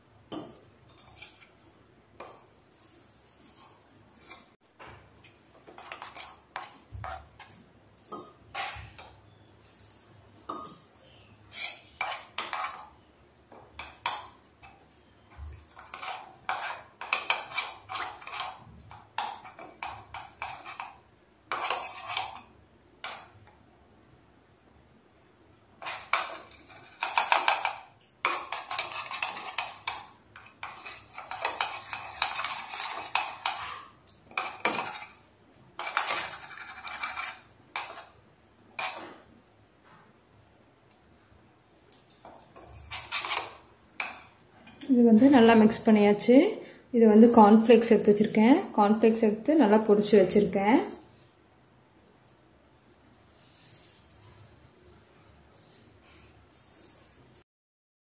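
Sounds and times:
spoon clinking and scraping bowl: 0:00.3 - 0:01.6, 0:05.2 - 0:10.9, 0:11.5 - 0:13.0, 0:13.6 - 0:23.4, 0:25.8 - 0:38.2, 0:38.8 - 0:39.2, 0:42.1 - 0:45.0, 0:53.2 - 0:54.6.

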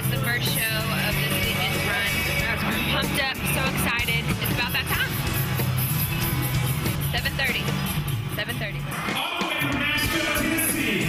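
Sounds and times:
woman speaking: 0:00.0 - 0:05.2, 0:07.1 - 0:07.7, 0:08.3 - 0:08.8
background music: 0:00.0 - 0:11.0.

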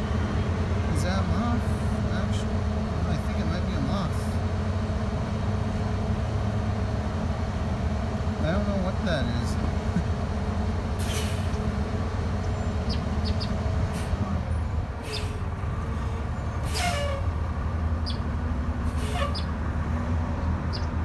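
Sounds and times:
vehicle engine idling: 0:00.0 - 0:21.0.

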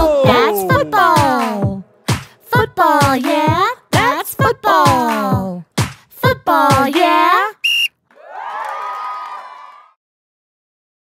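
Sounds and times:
person speaking: 0:00.0 - 0:01.8
referee's whistle blast: 0:07.6 - 0:07.9
children cheering: 0:08.1 - 0:10.0.

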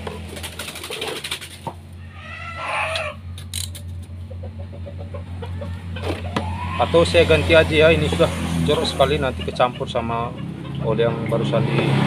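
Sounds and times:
chicken calling: 0:00.8 - 0:03.4, 0:04.0 - 0:11.2.

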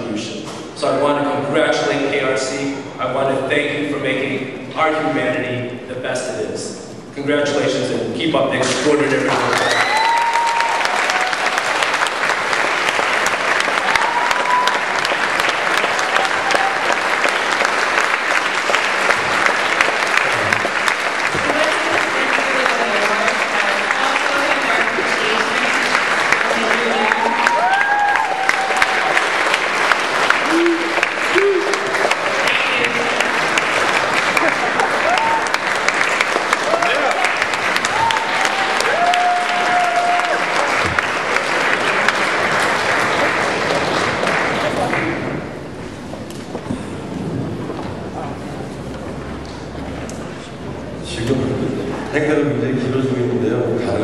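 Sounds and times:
audience applauding: 0:08.7 - 0:46.4.

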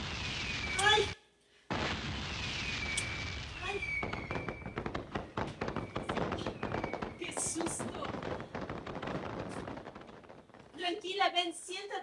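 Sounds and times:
firework burst: 0:00.0 - 0:10.8
falling whistles: 0:00.1 - 0:01.2, 0:02.3 - 0:07.4
rapid crackling pops: 0:01.7 - 0:11.3.

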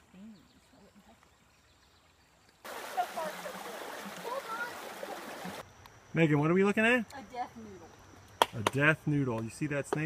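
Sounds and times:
river water rushing over rocks: 0:02.7 - 0:05.6.

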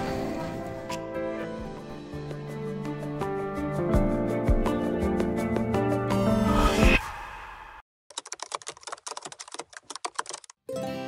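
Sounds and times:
keyboard typing clicks: 0:08.1 - 0:10.6.

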